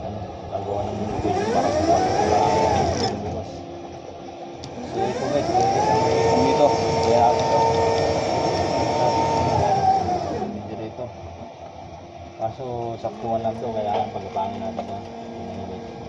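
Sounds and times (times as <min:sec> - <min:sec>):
hydraulic pump motor whining: 0:00.0 - 0:12.3, 0:12.9 - 0:16.0.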